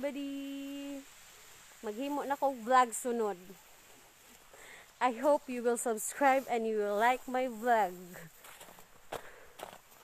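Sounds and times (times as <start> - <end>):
footsteps in snow: 5.1 - 10.0.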